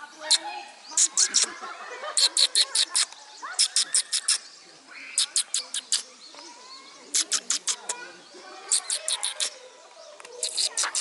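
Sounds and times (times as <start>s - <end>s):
small animal rasping chirps: 0.2s - 1.6s, 2.2s - 4.5s, 5.1s - 6.1s, 7.1s - 11.0s.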